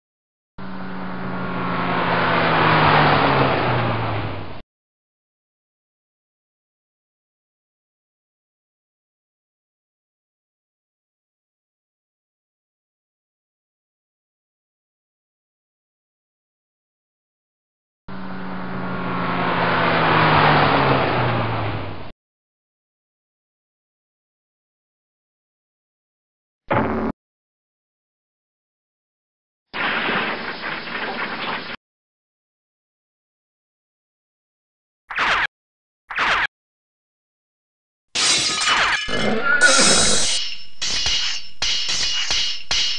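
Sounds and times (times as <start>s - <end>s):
car driving by: 0.6s - 4.6s, 18.1s - 22.1s.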